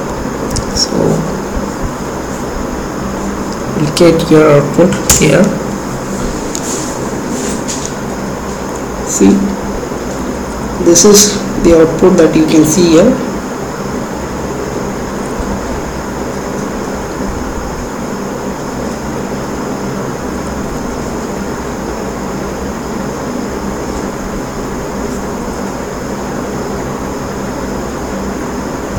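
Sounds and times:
low hum: 0:00.0 - 0:28.9
steady background hiss: 0:00.0 - 0:28.9.

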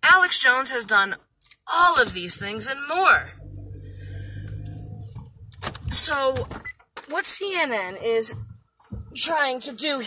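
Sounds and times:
vehicle rumble inside car: 0:01.8 - 0:06.7.

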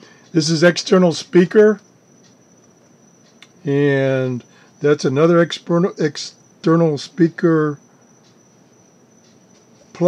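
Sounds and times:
low hiss: 0:00.0 - 0:10.0.

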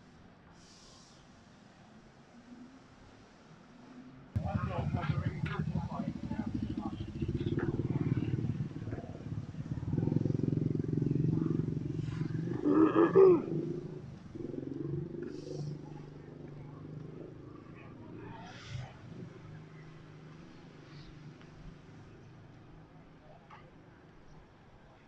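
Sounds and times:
vehicle engine running: 0:04.4 - 0:23.0
people's voices: 0:04.4 - 0:25.0.

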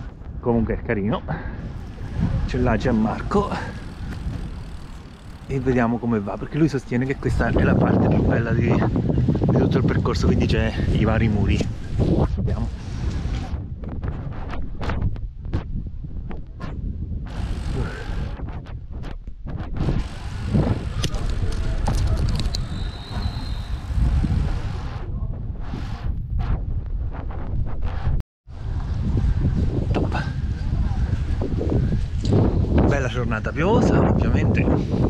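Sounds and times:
wind buffeting microphone: 0:00.0 - 0:35.0
bike knocks and rattles: 0:03.0 - 0:06.6, 0:19.0 - 0:24.0.

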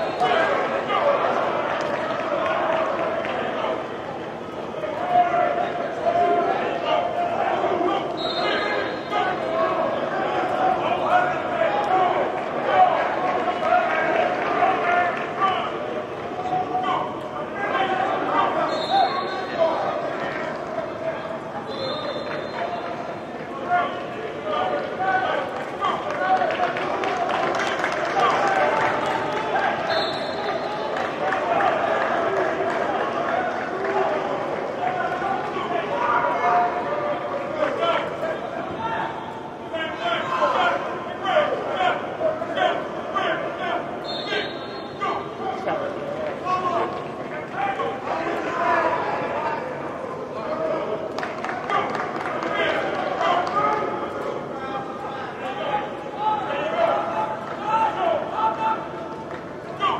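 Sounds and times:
people shouting in echoing hall: 0:00.0 - 0:59.9
claps: 0:25.4 - 0:35.6, 0:51.1 - 0:54.2, 0:59.1 - 0:59.9.

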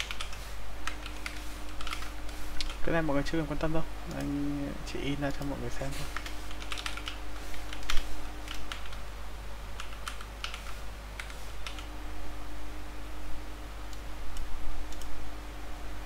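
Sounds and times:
typing on computer keyboard: 0:00.0 - 0:02.8, 0:06.1 - 0:09.0, 0:09.8 - 0:11.9.

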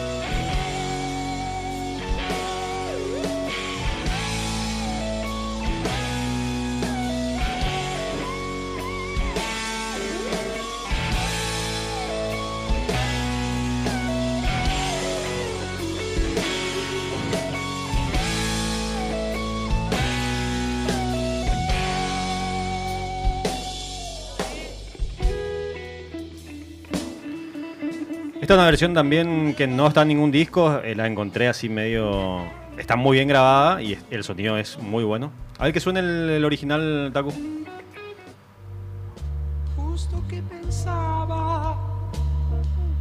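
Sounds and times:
rock song with guitars and drums: 0:00.0 - 0:30.6, 0:37.2 - 0:38.6.

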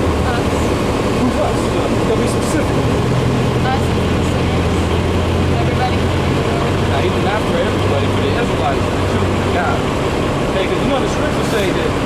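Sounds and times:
faint voices: 0:00.0 - 0:12.0
street traffic rumble: 0:00.0 - 0:12.0.

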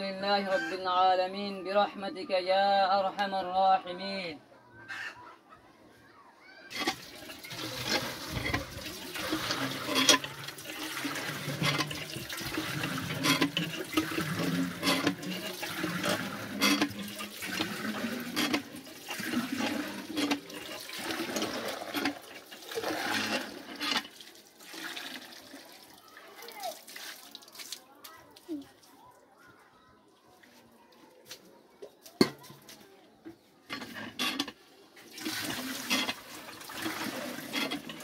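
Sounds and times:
hand pump knocking: 0:06.7 - 0:22.2
water gushing into metal pot: 0:06.7 - 0:27.8, 0:33.7 - 0:38.0.

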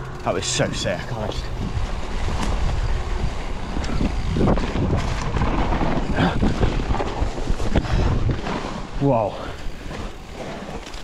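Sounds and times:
wind buffeting microphone: 0:00.0 - 0:10.9
bike tyres rumbling on dirt: 0:00.0 - 0:11.0
bike knocks and rattles: 0:01.6 - 0:11.0.

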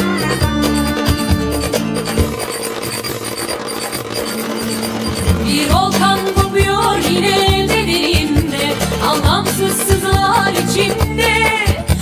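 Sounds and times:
instrumental pop music: 0:00.0 - 0:12.0.

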